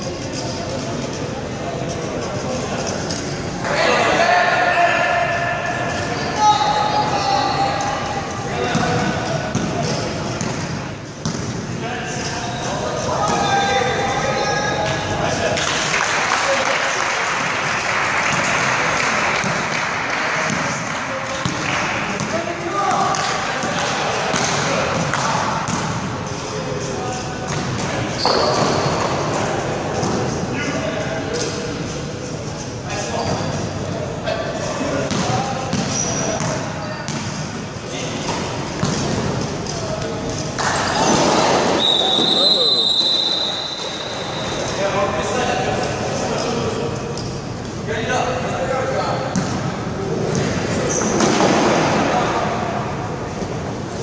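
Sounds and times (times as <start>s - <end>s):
players calling and shouting: 2.4s - 15.6s, 32.6s - 52.1s
referee's whistle: 41.8s - 44.6s.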